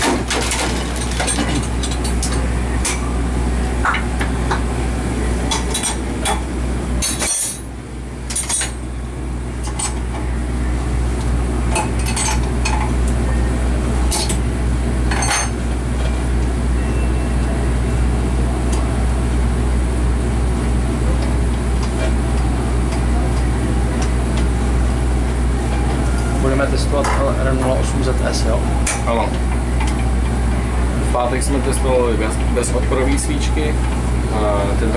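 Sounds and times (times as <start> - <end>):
low machine hum: 0.0 - 34.9.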